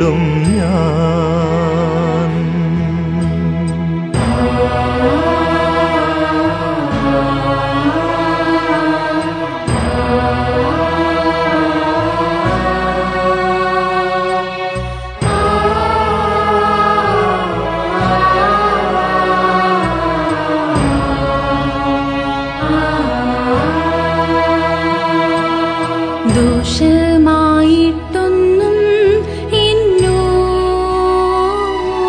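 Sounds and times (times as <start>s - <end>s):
person singing a hymn slowly: 0.0s - 32.0s
accompanying chords: 2.2s - 32.0s.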